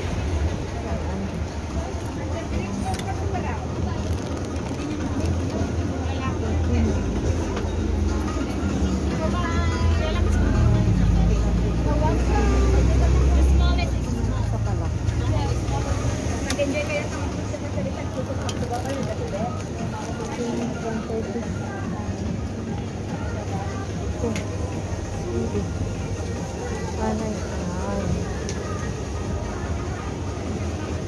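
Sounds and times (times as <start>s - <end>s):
shoppers chattering: 0.0s - 31.0s.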